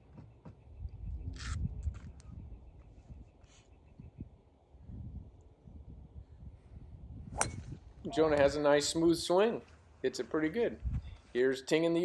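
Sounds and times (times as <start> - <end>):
wind rumbling on microphone: 0.6 - 9.3, 10.7 - 11.3.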